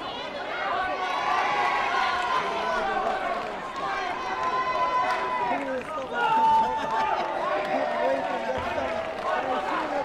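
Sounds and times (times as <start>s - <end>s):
crowd shouting: 0.0s - 10.0s.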